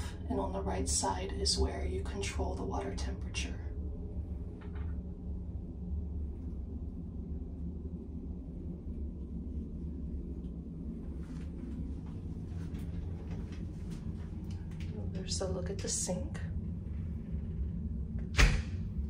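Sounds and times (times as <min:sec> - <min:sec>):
ship engine rumble and hum: 0:00.0 - 0:19.0.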